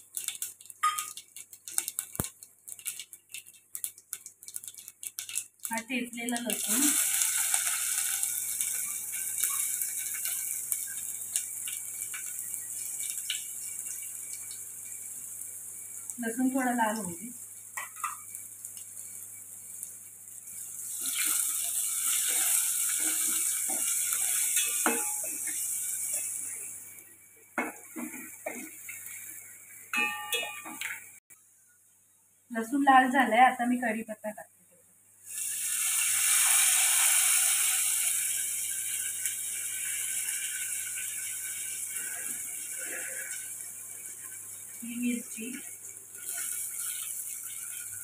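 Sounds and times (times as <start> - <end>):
garlic sizzling in hot oil: 0.0 - 31.2, 35.2 - 48.0.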